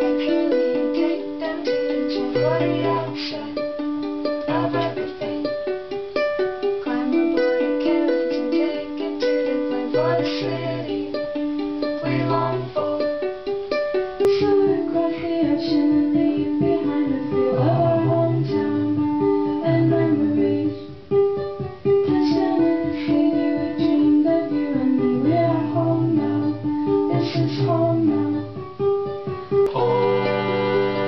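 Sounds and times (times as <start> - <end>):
ukulele picking a melody: 0.0 - 31.0
live band playing: 29.5 - 31.0.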